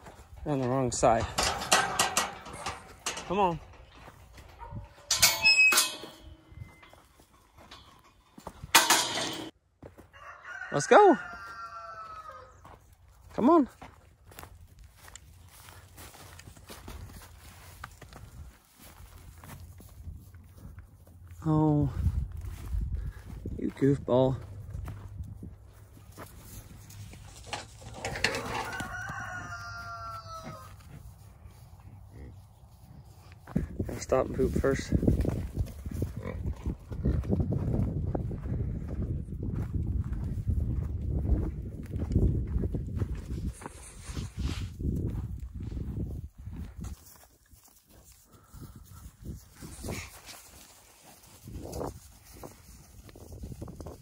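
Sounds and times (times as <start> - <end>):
steel gate rattling: 0.8 - 9.5, 27.3 - 28.8
metal gate squeaking: 1.2 - 3.6, 4.6 - 9.5
rooster crowing: 10.0 - 12.7, 28.2 - 30.9.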